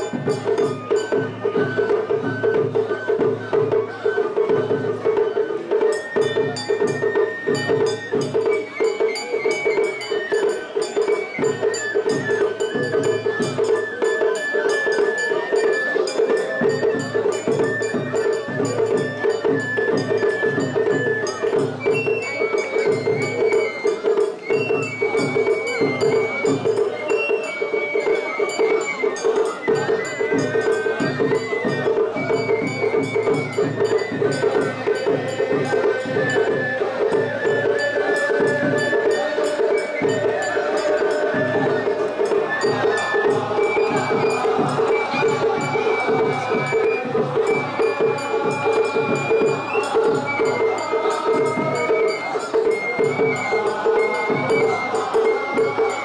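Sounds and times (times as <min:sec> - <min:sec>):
large crowd noise: 0:00.0 - 0:56.0
percussion beat with metal clangs: 0:00.0 - 0:56.0.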